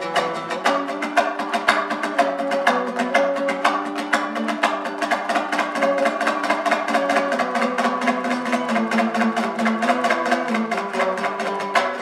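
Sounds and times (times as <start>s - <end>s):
lute strummed fast: 0.0s - 12.0s.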